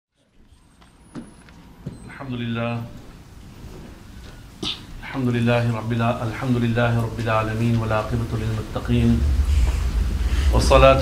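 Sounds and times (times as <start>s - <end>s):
low room and microphone noise: 0.2s - 11.0s
short low sound: 8.9s - 11.0s.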